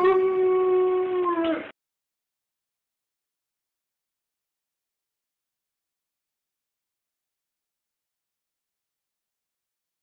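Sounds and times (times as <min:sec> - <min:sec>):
dog howling: 0:00.0 - 0:01.7.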